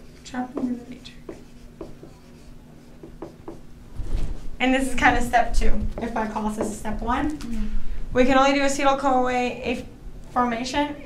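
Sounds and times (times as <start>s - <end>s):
marker squeaking on whiteboard: 0.0s - 3.6s
faint steady hum: 0.0s - 11.0s.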